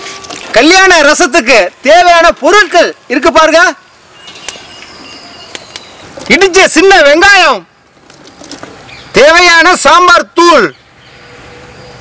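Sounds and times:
person speaking: 6.2s - 7.8s.

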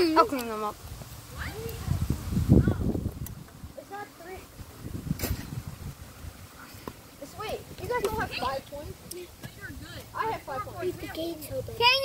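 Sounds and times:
wind rumble on microphone: 0.8s - 6.8s.

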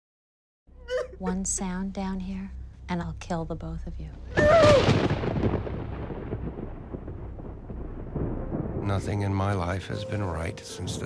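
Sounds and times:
impact boom with rumbling decay: 4.4s - 9.5s.

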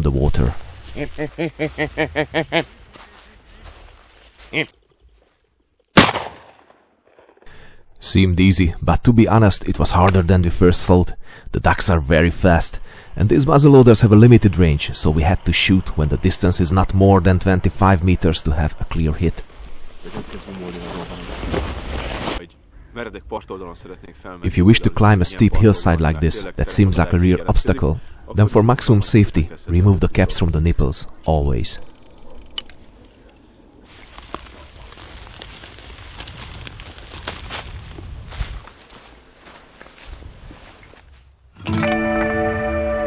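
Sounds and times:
person laughing: 0.9s - 2.8s, 4.5s - 4.8s
shotgun shot: 6.0s - 7.4s.

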